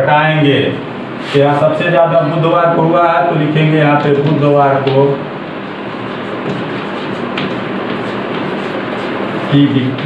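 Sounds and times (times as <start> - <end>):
steady rushing background noise: 1.2 - 10.0
chalk scraping on blackboard: 4.9 - 10.0.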